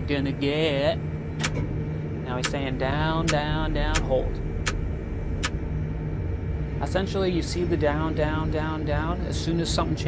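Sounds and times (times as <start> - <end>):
crane machinery hum: 0.0 - 10.0
sharp click: 1.4 - 1.7.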